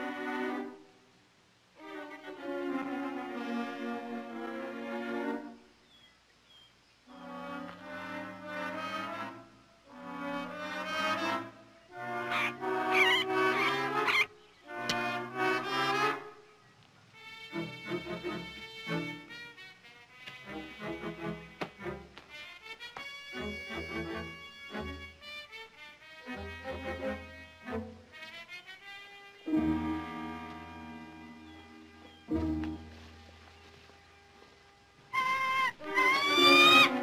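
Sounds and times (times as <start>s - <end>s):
orchestral brass music: 7.1s - 16.3s, 17.2s - 32.0s.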